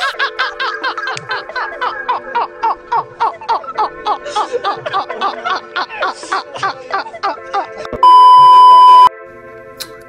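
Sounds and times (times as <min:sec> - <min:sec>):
background music: 0:00.0 - 0:10.0
high electronic beep: 0:08.0 - 0:09.1.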